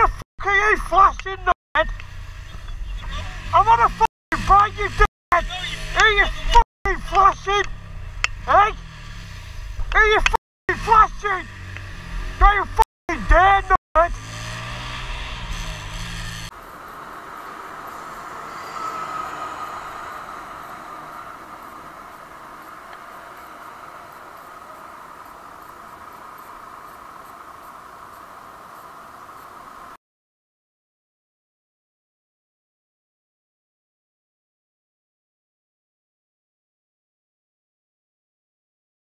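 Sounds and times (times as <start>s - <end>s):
engine low rumble: 1.2s - 30.0s
motorcycle engine riding: 1.8s - 30.0s.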